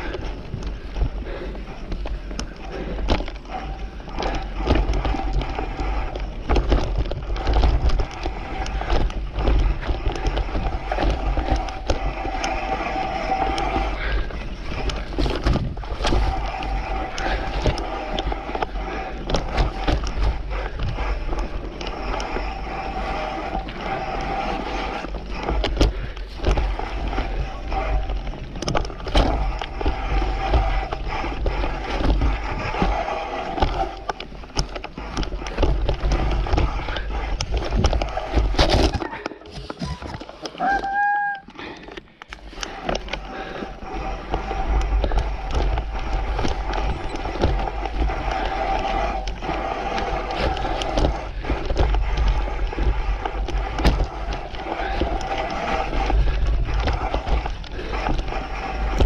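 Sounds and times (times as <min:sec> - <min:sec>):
bike knocks and rattles: 0:00.0 - 0:41.1, 0:42.3 - 0:59.0
bike tyres rolling over dirt: 0:00.0 - 0:59.0
mid-pitched whir: 0:00.0 - 0:59.0.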